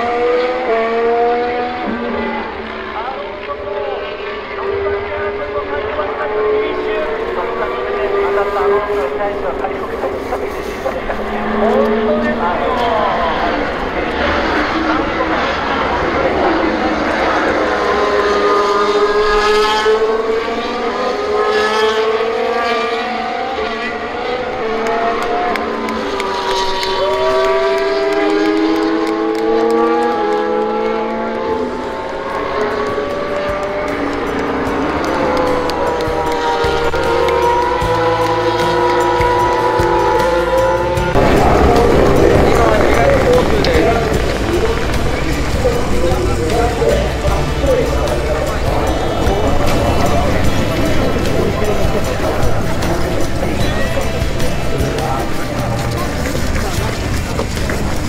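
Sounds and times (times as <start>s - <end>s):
racing car engines passing: 0.0s - 58.0s
crowd hubbub: 1.0s - 19.6s, 23.2s - 58.0s.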